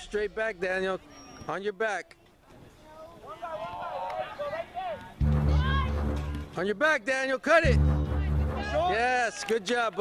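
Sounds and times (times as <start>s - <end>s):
people shouting: 3.2s - 6.5s.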